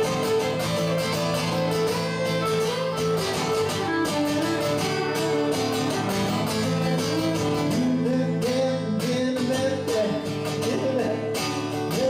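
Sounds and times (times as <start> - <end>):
fiddle playing sliding melody: 0.0 - 7.8
acoustic guitar strumming: 0.0 - 12.0.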